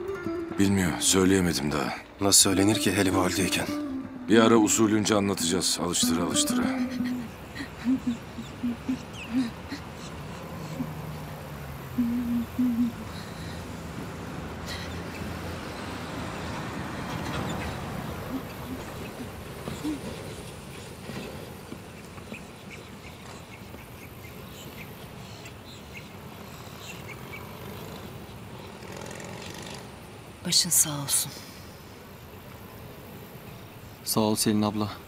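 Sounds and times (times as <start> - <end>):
outdoor background noise: 0.0 - 35.0.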